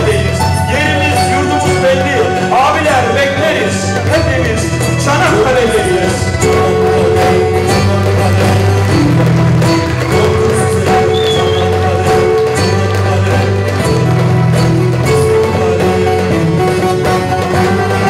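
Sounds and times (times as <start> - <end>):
folk ensemble playing: 0.0 - 18.0.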